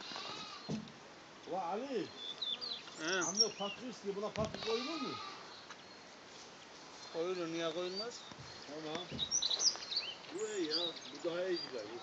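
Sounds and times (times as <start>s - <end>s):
man speaking: 3.0s - 5.3s.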